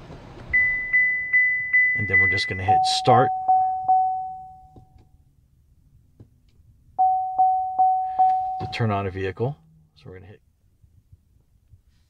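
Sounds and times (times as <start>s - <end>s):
dashboard warning chime: 0.5s - 5.0s, 7.0s - 9.1s.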